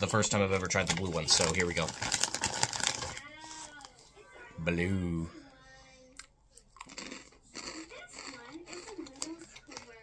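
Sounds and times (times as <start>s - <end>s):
chewing crunchy chip: 6.2s - 10.0s.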